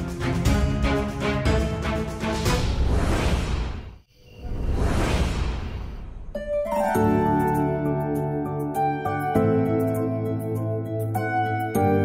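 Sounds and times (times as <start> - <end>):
whoosh with low rumble: 2.5 - 6.6.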